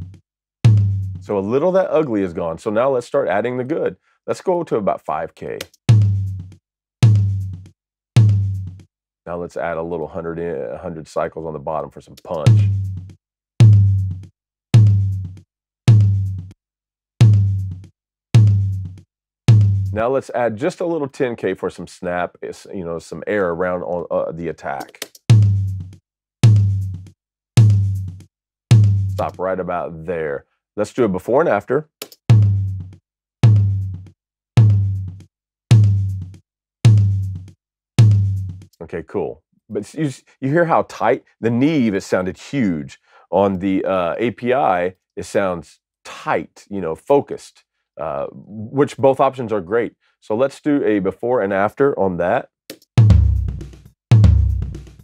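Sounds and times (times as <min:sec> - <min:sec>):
tom drum hits: 0:00.6 - 0:01.1, 0:07.0 - 0:07.5, 0:08.2 - 0:08.6, 0:34.6 - 0:35.0, 0:38.0 - 0:38.5, 0:53.0 - 0:55.0.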